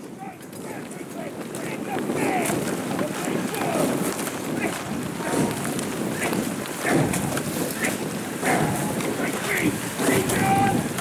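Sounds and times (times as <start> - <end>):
steady rushing noise: 0.0 - 11.0
voices shouting: 0.1 - 11.0.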